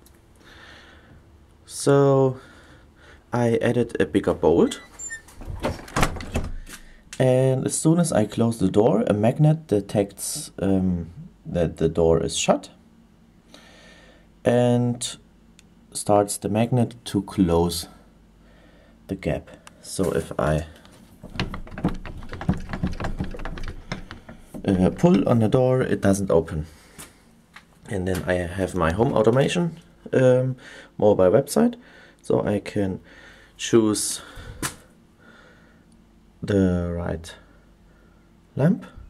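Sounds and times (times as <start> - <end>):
faint low hum: 0.0 - 39.0
wooden door knocking and rattling: 5.4 - 6.6, 21.2 - 25.4.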